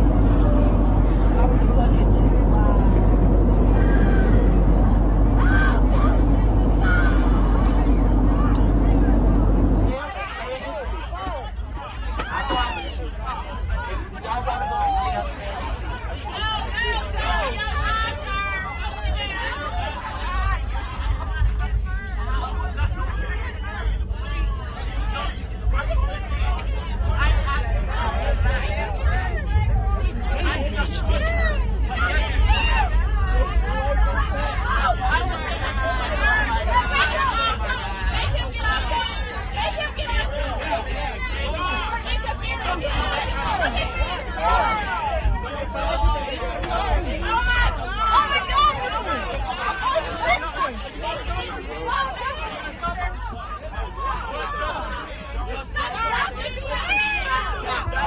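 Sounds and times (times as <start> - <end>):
airliner cabin drone: 0.0 - 11.3
steady low rumble: 0.0 - 12.2, 13.0 - 48.8
indistinct passenger voices: 0.0 - 58.0
people shouting and talking: 0.0 - 58.0.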